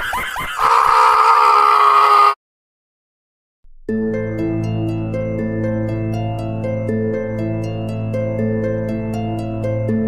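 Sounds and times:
loud cry on one pitch: 0.6s - 2.4s.

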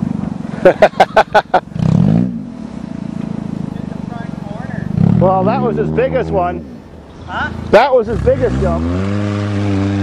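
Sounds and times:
car engine revving and idling: 0.0s - 10.0s.

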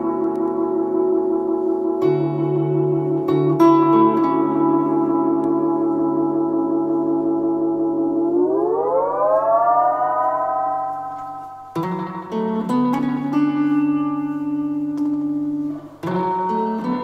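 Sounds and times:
guitar notes plucked: 0.0s - 17.0s
tape echo feedback guitar drone: 0.0s - 17.0s.

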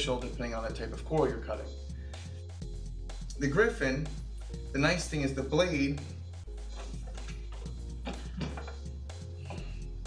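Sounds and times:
music with low bass notes: 0.0s - 10.0s.

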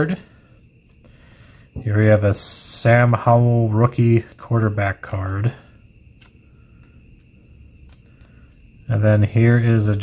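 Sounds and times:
low room hum: 0.0s - 10.0s
trading cards clicking: 6.2s - 8.4s.

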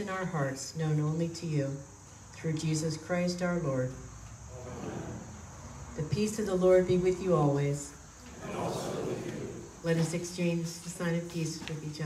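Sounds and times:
crickets trilling: 0.0s - 8.9s
group murmuring a response: 4.5s - 5.8s, 8.2s - 9.8s.

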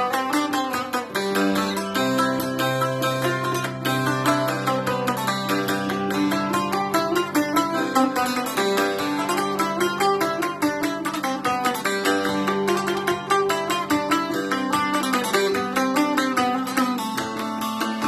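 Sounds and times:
plucked lute notes: 0.0s - 18.0s.

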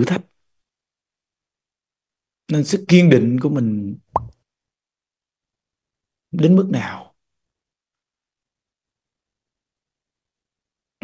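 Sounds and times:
mouth plop: 4.2s - 4.4s.

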